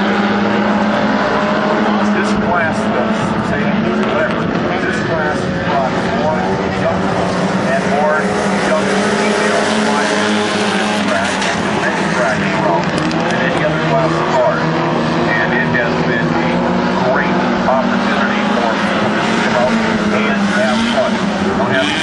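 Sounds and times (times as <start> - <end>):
race car engines droning: 0.0 - 22.0.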